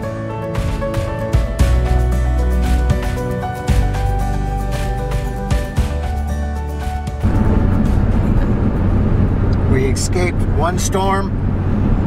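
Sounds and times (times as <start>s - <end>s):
music: 0.0s - 9.5s
road and engine noise in truck cab: 0.0s - 12.0s.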